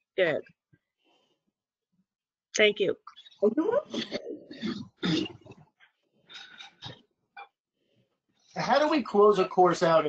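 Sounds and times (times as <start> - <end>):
person clearing throat: 3.9 - 5.6.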